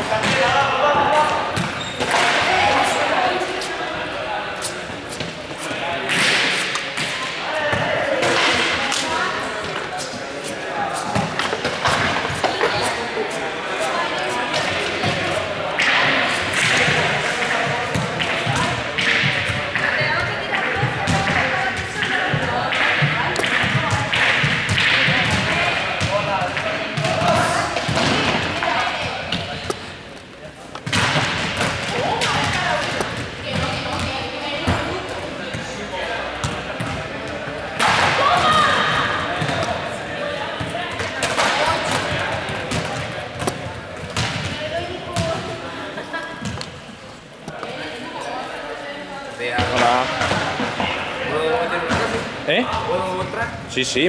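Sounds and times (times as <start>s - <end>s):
overlapping voices in a hall: 0.0s - 53.4s
footballs thudding and bouncing: 13.9s - 30.0s, 30.6s - 45.5s.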